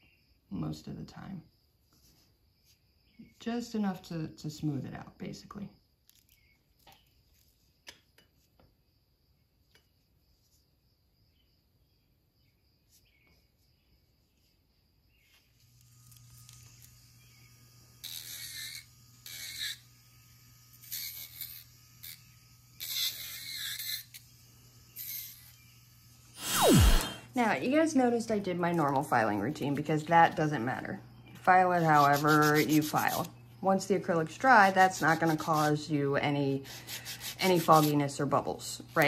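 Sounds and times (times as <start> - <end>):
drill bit grinding on nails: 15.7 - 27.2, 31.6 - 33.3, 36.6 - 37.9
electric nail drill humming: 15.7 - 27.3, 31.5 - 33.4, 34.4 - 38.0.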